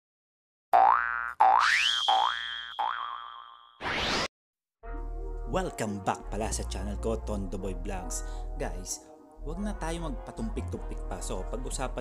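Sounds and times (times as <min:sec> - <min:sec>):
cartoon springy boings: 0:00.8 - 0:04.3.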